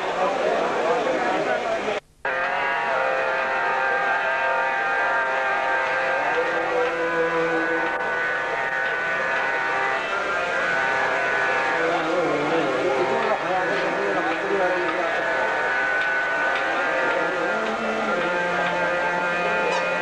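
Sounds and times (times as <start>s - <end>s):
harmonium chords: 2.3s - 20.0s.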